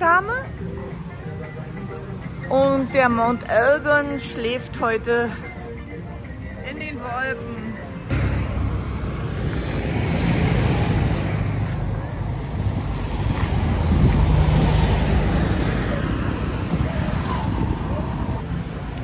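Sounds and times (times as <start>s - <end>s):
cars driving by: 0.0s - 19.0s
motorcycles driving by: 8.0s - 19.0s.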